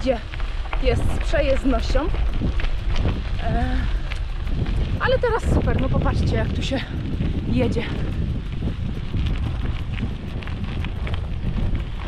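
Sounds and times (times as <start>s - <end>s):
faint ticks: 0.0s - 12.0s
tyres rolling on dirt track: 0.0s - 12.0s
wind buffeting microphone: 0.0s - 12.0s.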